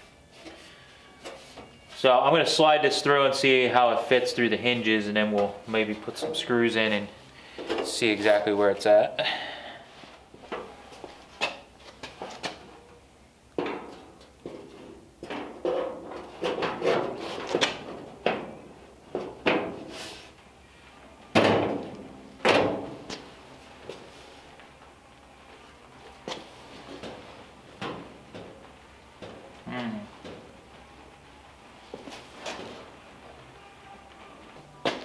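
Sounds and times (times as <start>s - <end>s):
sheet metal clanks and scrapes: 13.6s - 18.5s.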